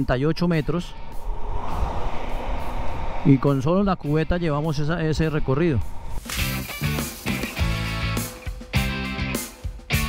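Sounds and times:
wind rush on microphone: 0:00.0 - 0:06.3.

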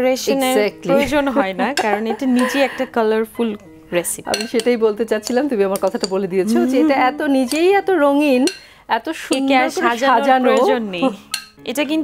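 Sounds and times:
woman talking: 0:00.0 - 0:12.0
metal spoon clinking glass bowl: 0:04.3 - 0:06.3, 0:07.3 - 0:08.7, 0:09.3 - 0:11.6.

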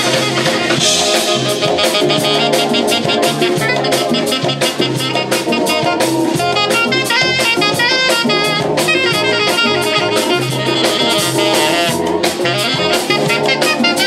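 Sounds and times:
drum kit: 0:00.0 - 0:14.0
electric bass: 0:00.0 - 0:14.0
saxophone playing quick notes: 0:00.0 - 0:14.0.

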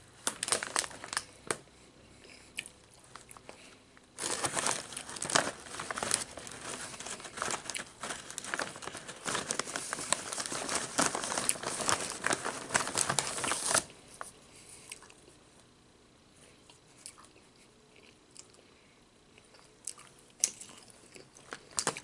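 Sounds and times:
chip bag crinkling: 0:00.2 - 0:01.6, 0:04.2 - 0:14.3, 0:20.4 - 0:22.0.

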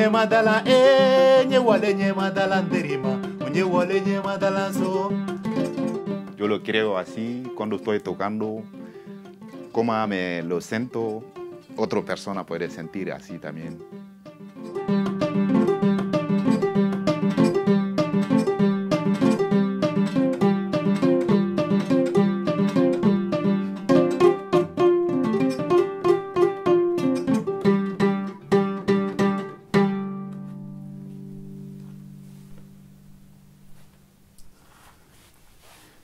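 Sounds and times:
plucked harp-lute: 0:00.0 - 0:33.9.

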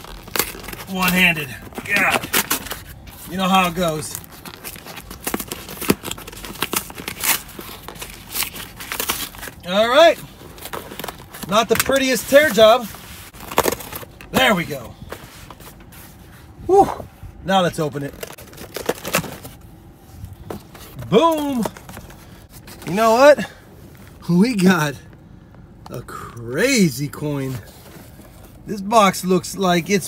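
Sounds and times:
cardboard box being torn open: 0:00.0 - 0:03.0, 0:13.4 - 0:14.2
cardboard scraping and rustling: 0:00.0 - 0:16.6, 0:17.4 - 0:23.2.

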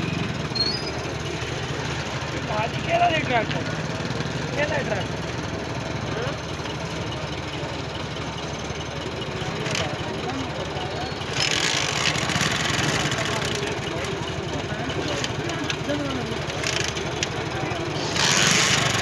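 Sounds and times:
tractor diesel engine idling: 0:00.0 - 0:19.0
murmuring voices: 0:07.2 - 0:19.0.

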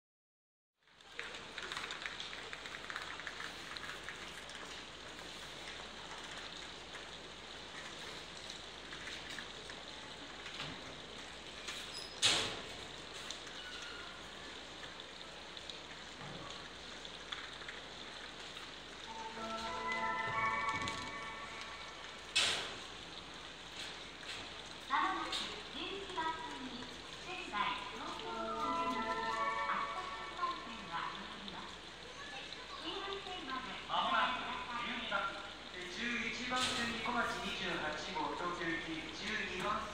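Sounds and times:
electronic chime melody: 0:19.1 - 0:21.8
station platform hiss: 0:19.1 - 0:22.8.

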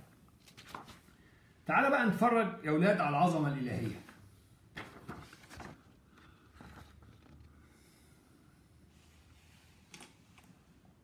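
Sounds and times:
paper sheet rustling: 0:00.4 - 0:01.2, 0:03.8 - 0:07.5.

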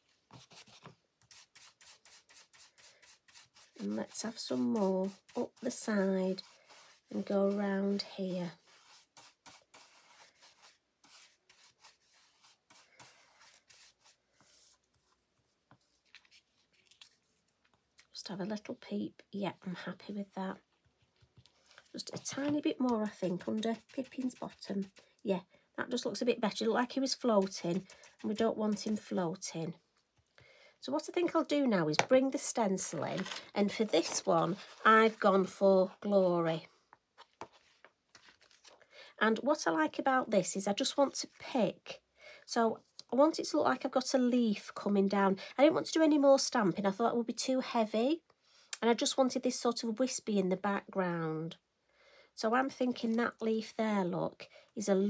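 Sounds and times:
stencil brush scratching on card: 0:00.3 - 0:15.1, 0:21.8 - 0:25.0, 0:27.1 - 0:29.2.

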